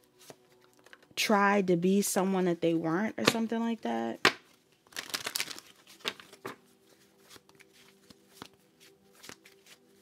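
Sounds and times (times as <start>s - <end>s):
cards being shuffled: 4.2s - 10.0s.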